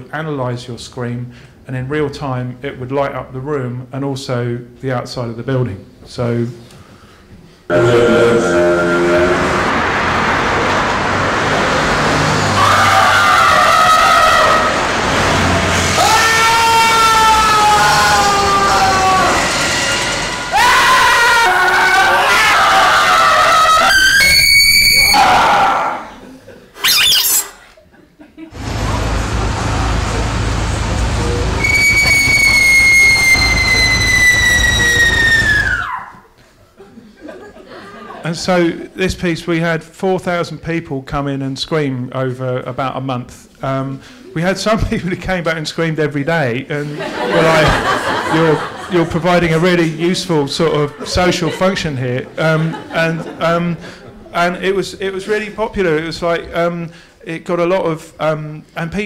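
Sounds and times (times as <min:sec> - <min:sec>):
steady deep hum: 0:07.7 - 0:13.0, 0:28.6 - 0:35.6
recorded people screaming: 0:08.4 - 0:26.1, 0:31.6 - 0:36.3.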